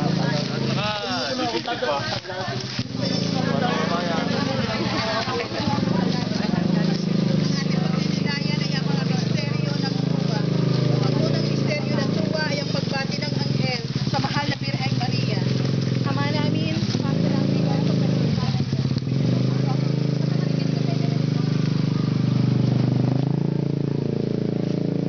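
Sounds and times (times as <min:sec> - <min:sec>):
people talking: 0:00.0 - 0:24.1
motor scooter engine running: 0:00.0 - 0:25.0.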